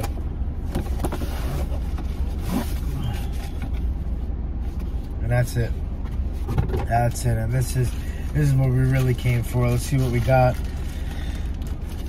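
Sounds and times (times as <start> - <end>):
car engine idling: 0.0 - 12.0
cardboard and plastic rustling: 8.3 - 12.0.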